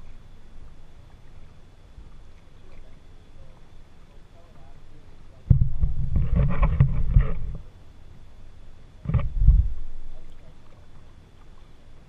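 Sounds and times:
water sloshing against kayak hull: 0.0s - 7.8s, 9.0s - 12.0s.

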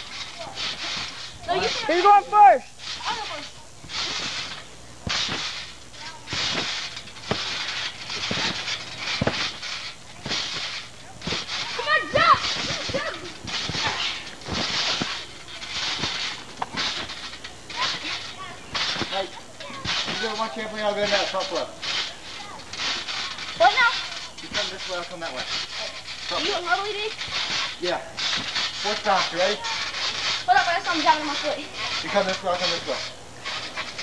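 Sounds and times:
trampoline mat thumping: 0.0s - 34.0s
trampoline springs creaking: 0.0s - 34.0s.

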